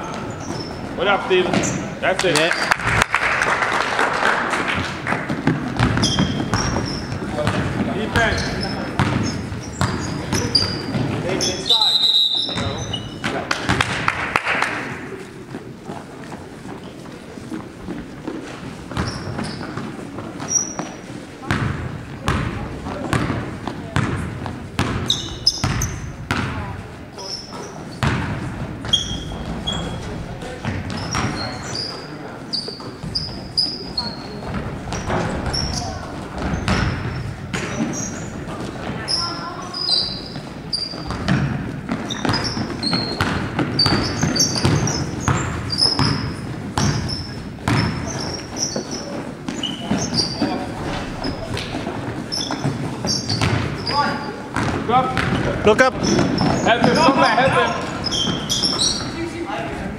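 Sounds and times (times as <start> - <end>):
sneakers squeaking: 0.0 - 2.8, 4.7 - 14.2, 14.8 - 59.9
voices of players and spectators: 0.0 - 59.9
basketball bouncing on wooden floor: 5.1 - 11.2, 18.9 - 26.8, 28.0 - 30.0, 30.6 - 31.6, 32.8 - 39.0, 40.3 - 57.0.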